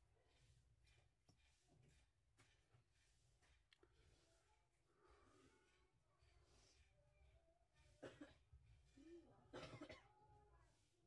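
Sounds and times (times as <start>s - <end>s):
person coughing faintly: 8.0s - 8.6s, 9.5s - 10.3s.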